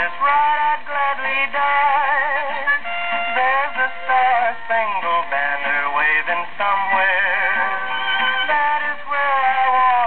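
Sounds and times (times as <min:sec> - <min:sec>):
old country-western record: 0:00.0 - 0:10.0.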